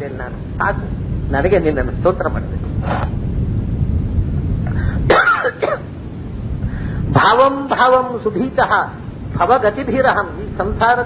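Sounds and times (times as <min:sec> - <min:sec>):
man clearing his throat: 0:05.1 - 0:05.9.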